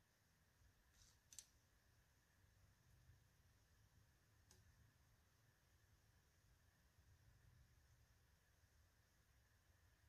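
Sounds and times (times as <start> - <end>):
faint high clicks of arrow: 0.9 - 1.7.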